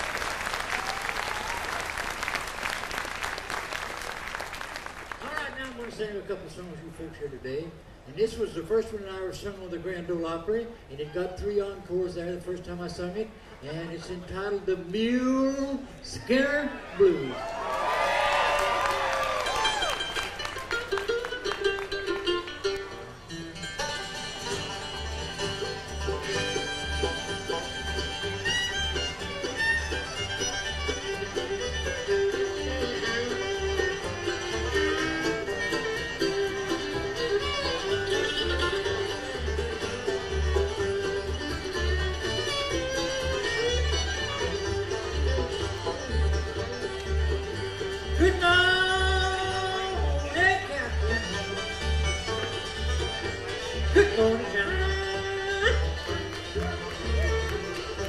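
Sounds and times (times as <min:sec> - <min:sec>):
bluegrass band playing: 0:00.0 - 0:58.0
fiddle lead: 0:17.0 - 0:58.0
person singing: 0:54.0 - 0:55.9.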